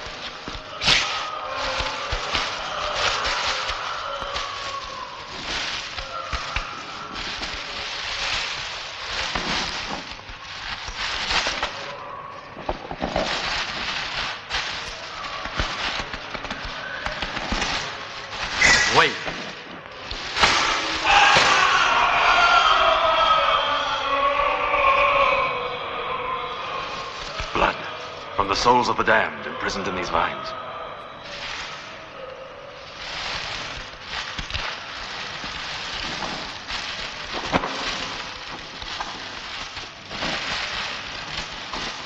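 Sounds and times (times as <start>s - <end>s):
crackling hiss: 0.0s - 42.0s
wavering moan-like tones: 0.0s - 42.0s.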